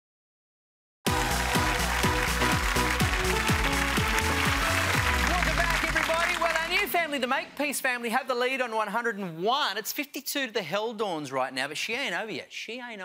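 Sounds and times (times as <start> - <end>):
game show theme music: 1.1 - 8.9.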